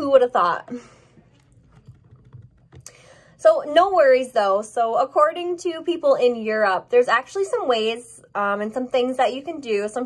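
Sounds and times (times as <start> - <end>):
hand clicks and taps: 1.6 - 3.0.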